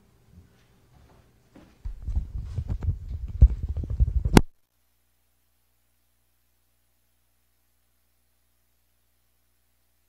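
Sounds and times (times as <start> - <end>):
microphone handling thumps: 1.8 - 4.5.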